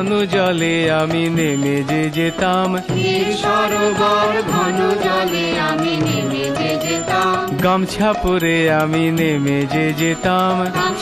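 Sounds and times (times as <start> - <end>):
man singing: 0.0 - 4.8, 6.0 - 11.0
instrumental accompaniment: 0.0 - 11.0.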